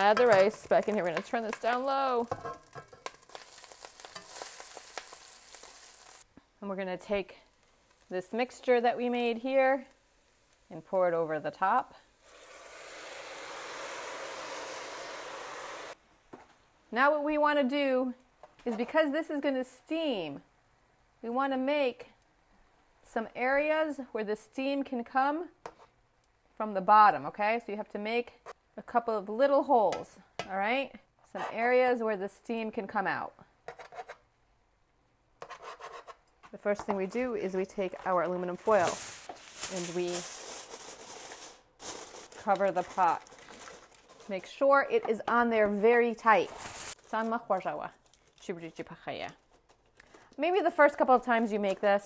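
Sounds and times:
liquid sizzling in a hot pot: 0.0 - 6.3, 12.1 - 16.0.

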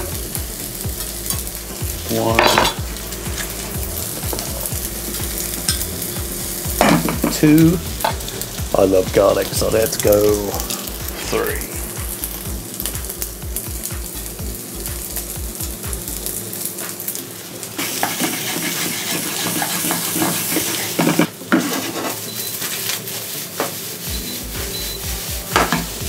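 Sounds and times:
rice sizzling in a pan: 0.0 - 26.0
wooden spoon stirring and scraping: 17.8 - 26.0.

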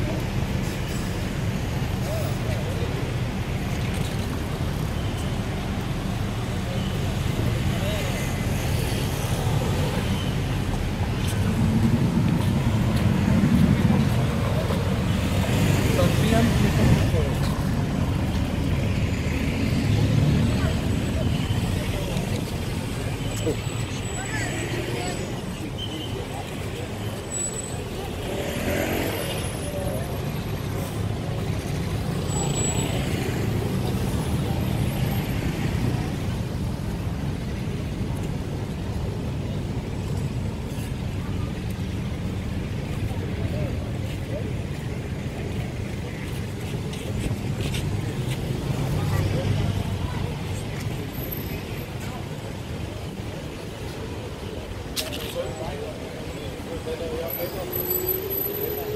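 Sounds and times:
road traffic rumble: 0.0 - 58.9.

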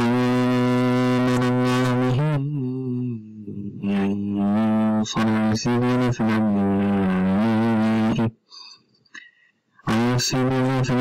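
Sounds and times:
man chanting recitation: 0.0 - 8.4, 9.8 - 11.0.

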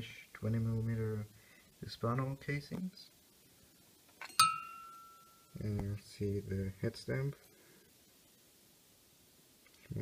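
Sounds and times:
brass cartridge case clinking: 4.2 - 5.2.

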